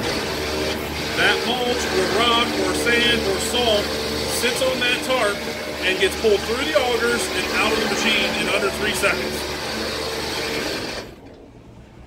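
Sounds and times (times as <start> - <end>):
augers mechanical whir: 0.0 - 11.8.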